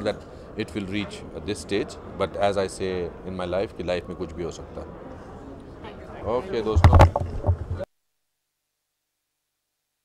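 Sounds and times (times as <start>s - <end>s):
microphone handling thumps: 6.7s - 7.9s.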